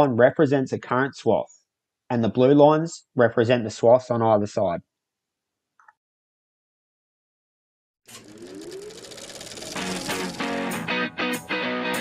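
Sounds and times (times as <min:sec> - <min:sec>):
noisy rising swell with climbing tone: 0:08.1 - 0:11.9
music with chords: 0:09.8 - 0:12.0.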